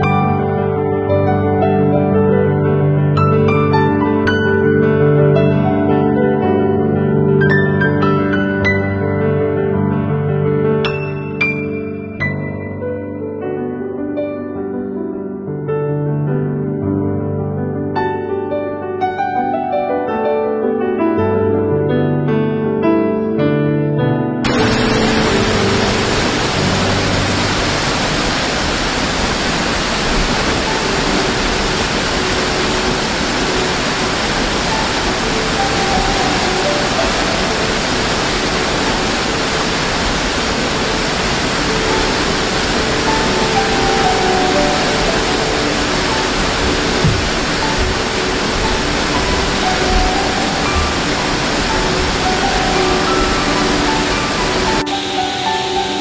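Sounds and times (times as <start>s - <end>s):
waterfall rushing: 0.0s - 1.6s, 24.5s - 56.0s
soft slow background music: 42.0s - 56.0s.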